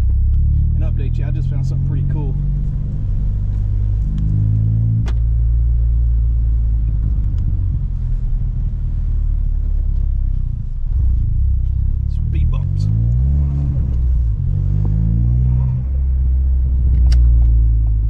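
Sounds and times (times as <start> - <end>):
car engine from inside cabin: 0.0 - 18.0
road noise: 0.0 - 18.0.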